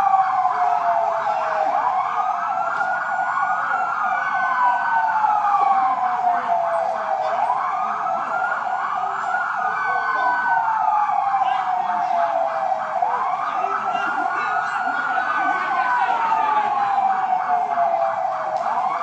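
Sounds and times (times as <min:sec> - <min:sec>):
emergency sirens wailing: 0:00.0 - 0:19.0.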